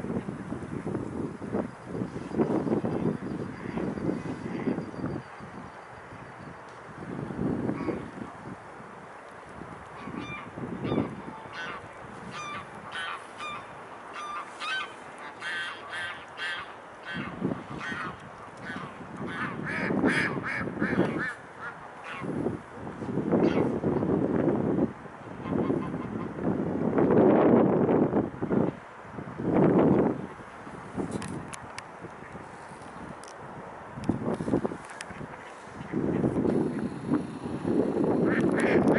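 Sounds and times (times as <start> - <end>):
wind rumbling on microphone: 0.0 - 38.9
waterfowl calling: 10.0 - 22.3.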